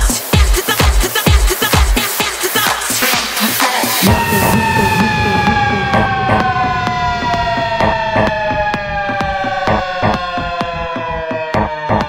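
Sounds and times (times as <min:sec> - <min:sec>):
steady dance beat: 0:00.0 - 0:12.0
siren-like synth tone: 0:04.0 - 0:12.0.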